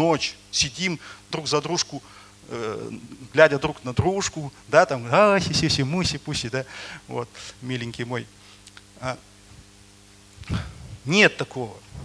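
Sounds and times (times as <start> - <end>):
man speaking: 0.0 - 8.3, 9.0 - 9.3, 11.0 - 12.0
faint steady hum: 0.0 - 12.0.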